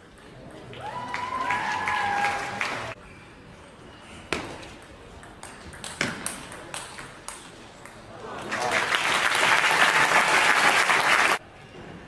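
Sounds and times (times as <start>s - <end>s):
crowd applauding and shouting: 0.7s - 3.0s, 8.5s - 11.4s.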